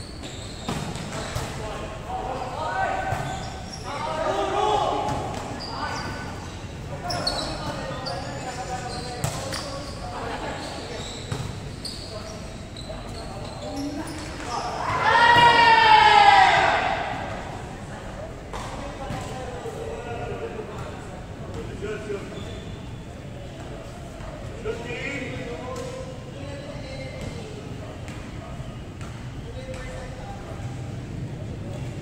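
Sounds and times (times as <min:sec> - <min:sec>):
players calling out: 0:12.8 - 0:17.8
loud drawn-out shout: 0:14.8 - 0:17.3.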